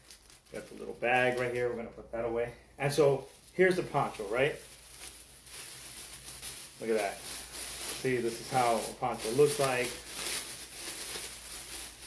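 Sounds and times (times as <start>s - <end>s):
plastic poncho rustling and crinkling: 0.0s - 12.0s.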